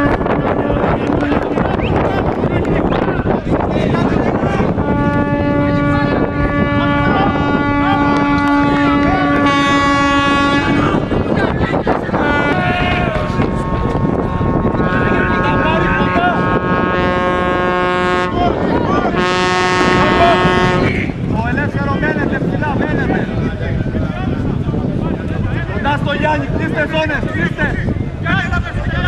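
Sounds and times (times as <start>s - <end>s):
loud horn blasts: 0.0s - 2.0s, 4.4s - 21.2s
crowd noise: 0.0s - 29.0s
wind on microphone: 0.0s - 29.0s.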